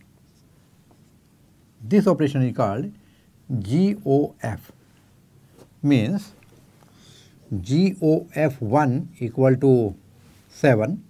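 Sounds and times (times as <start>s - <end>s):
man speaking: 1.8s - 4.8s, 5.8s - 6.4s, 7.5s - 11.0s.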